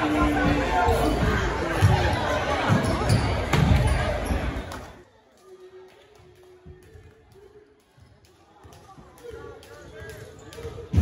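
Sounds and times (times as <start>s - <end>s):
spectators' voices: 0.0s - 11.0s.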